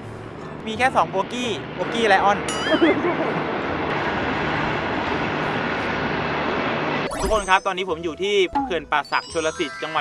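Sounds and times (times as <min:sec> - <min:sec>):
train crossing viaduct: 0:00.0 - 0:07.1.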